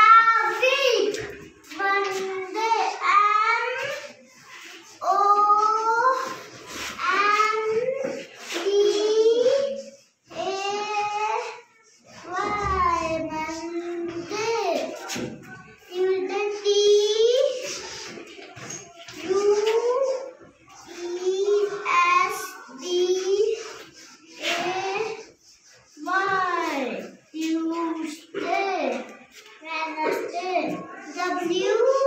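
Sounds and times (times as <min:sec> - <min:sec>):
young child singing: 0:00.0 - 0:32.0.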